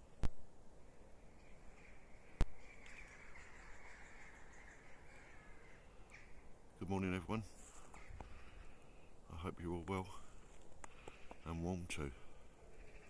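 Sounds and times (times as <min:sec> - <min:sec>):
crow cawing: 0:01.8 - 0:06.6, 0:10.9 - 0:11.6, 0:12.2 - 0:13.0.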